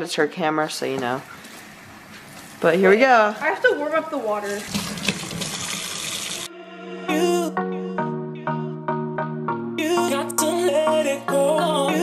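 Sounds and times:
tap water running: 4.1 - 6.5
background music with held notes: 6.5 - 12.0.

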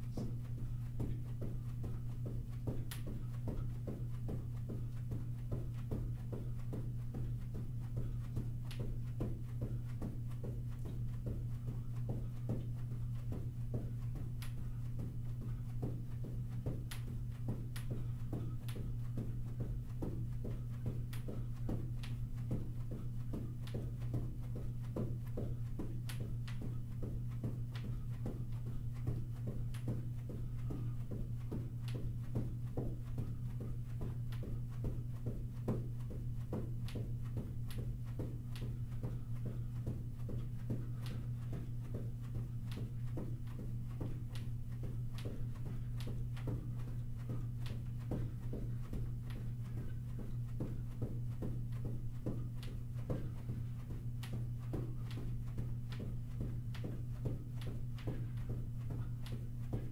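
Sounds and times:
constant low hum: 0.0 - 59.9.

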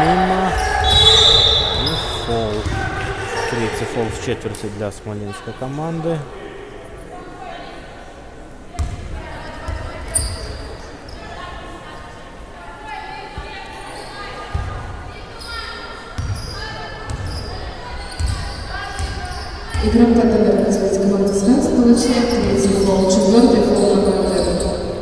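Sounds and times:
voices in a hall: 0.0 - 25.0.

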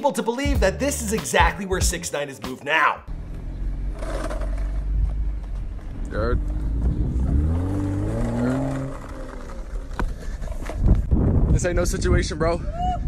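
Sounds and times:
car engine revving: 3.1 - 10.4.

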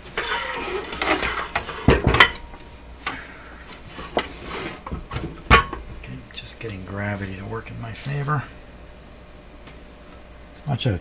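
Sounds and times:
metal scraping and rustling: 0.0 - 2.7, 3.6 - 5.9.

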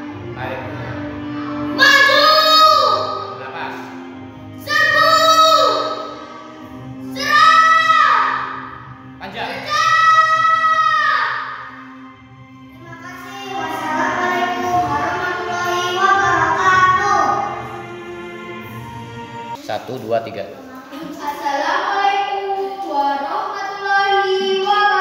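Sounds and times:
low musical backing: 0.0 - 25.0
child declaiming in drawn-out calls: 7.1 - 8.6.

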